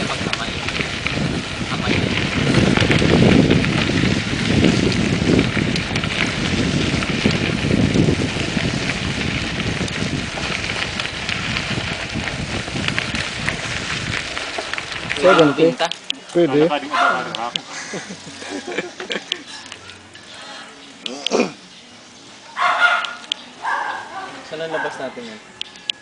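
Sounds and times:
wind buffeting microphone: 0.0s - 19.3s
tyres rolling on dirt path: 0.0s - 26.0s.

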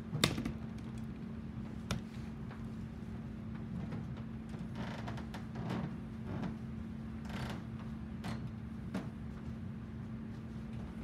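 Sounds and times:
low hum of room equipment: 0.0s - 11.0s.

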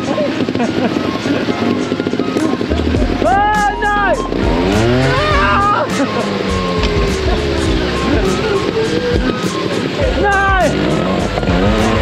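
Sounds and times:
person shouting: 3.2s - 4.2s, 4.8s - 5.9s
motorcycle engine revving hard: 4.2s - 12.0s.

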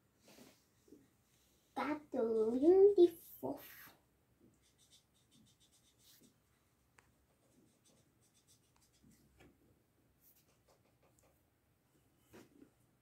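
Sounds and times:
marker scratching on paper: 1.8s - 4.0s, 4.6s - 6.4s, 7.4s - 9.5s, 10.2s - 11.4s.

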